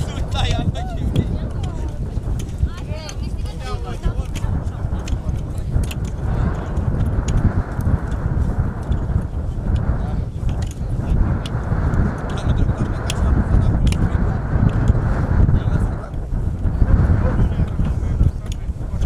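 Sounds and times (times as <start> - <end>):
people chattering: 0.0 - 6.8
wind rumble on microphone: 0.0 - 19.0.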